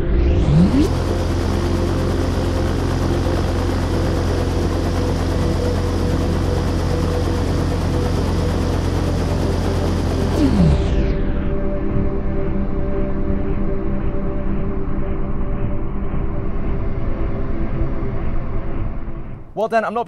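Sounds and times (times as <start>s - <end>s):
rising sweep: 0.0s - 12.8s
low fan hum: 0.5s - 11.1s.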